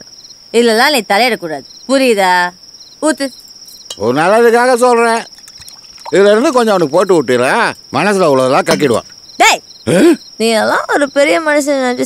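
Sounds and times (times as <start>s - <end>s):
crickets chirping: 0.0s - 12.0s
dialogue: 0.0s - 12.0s.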